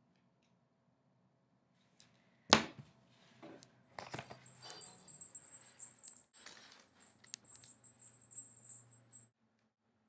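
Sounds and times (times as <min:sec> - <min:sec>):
small bell jingling: 0:03.9 - 0:09.3.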